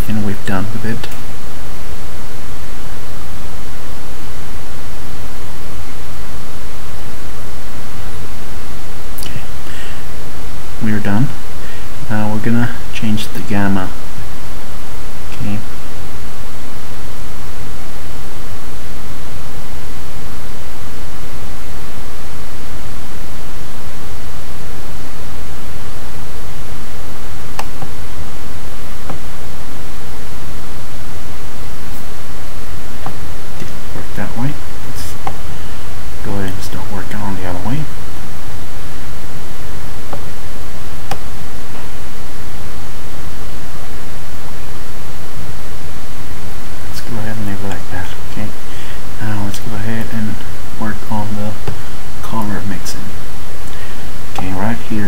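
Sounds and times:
loud steady recording hiss: 0:00.0 - 0:55.0.

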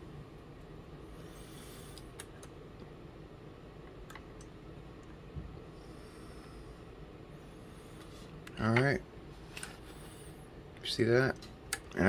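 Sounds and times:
low room hiss: 0:00.0 - 0:12.0.

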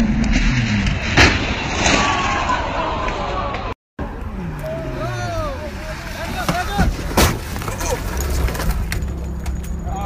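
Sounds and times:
car engine: 0:04.0 - 0:10.0.

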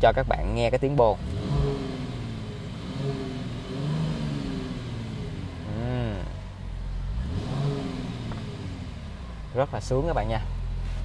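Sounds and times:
car engine revving at standstill: 0:00.2 - 0:10.0.

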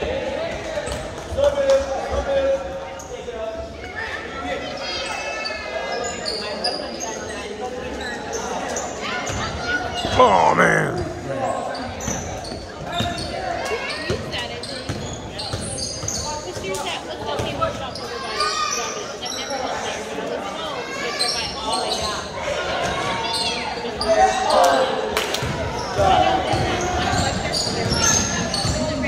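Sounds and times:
voices of players: 0:00.0 - 0:29.0.

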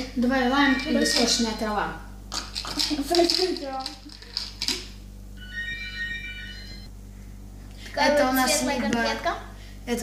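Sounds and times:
high-pitched organ-like chord: 0:00.4 - 0:01.8.

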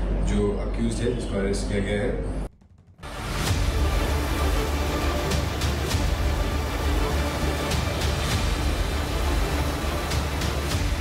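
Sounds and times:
heavy low drone: 0:02.4 - 0:11.0
noisy hiss: 0:03.1 - 0:11.0.

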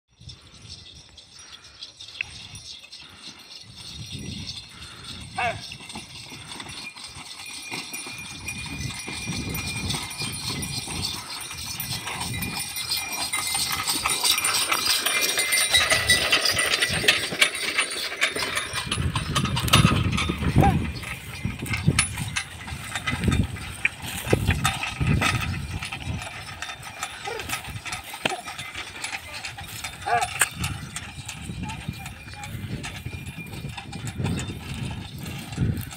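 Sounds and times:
cart rattling: 0:00.2 - 0:35.9
hoofbeats: 0:00.2 - 0:35.9.

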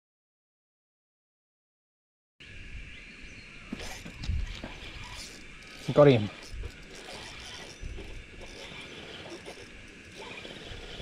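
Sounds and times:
steady high-pitched hum: 0:02.4 - 0:11.0.

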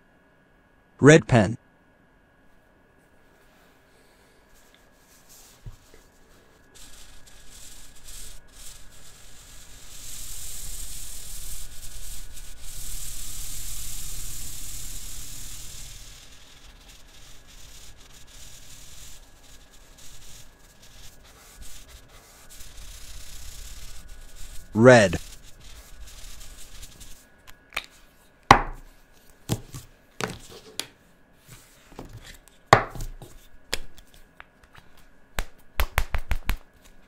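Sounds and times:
marker scribbling on paper: 0:06.8 - 0:12.9, 0:15.5 - 0:27.2.

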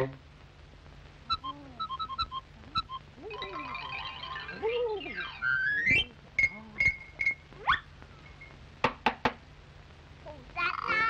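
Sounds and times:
film soundtrack hum: 0:00.0 - 0:11.0
knocking on wooden door: 0:08.8 - 0:09.4.

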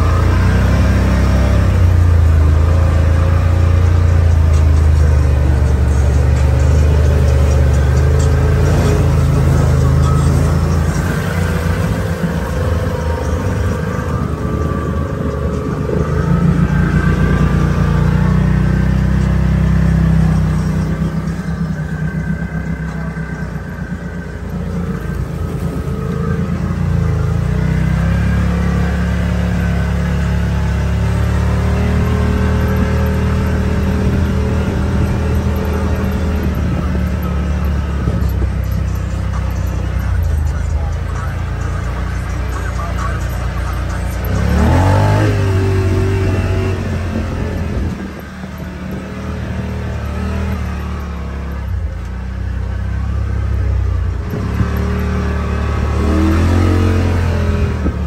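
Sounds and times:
music playing: 0:00.0 - 0:52.0
utility vehicle engine droning: 0:00.0 - 0:58.0.

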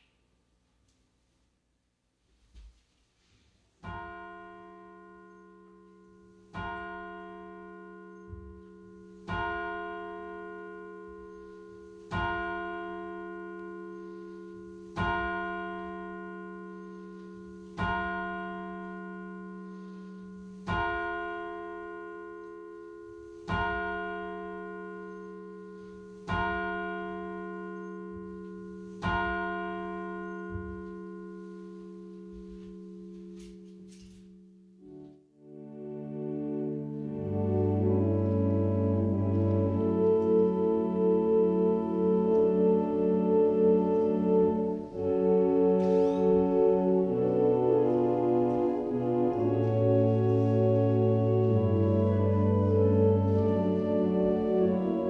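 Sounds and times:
held low keyboard chord: 0:03.8 - 0:55.0
ringing keyboard chord: 0:03.9 - 0:55.0.

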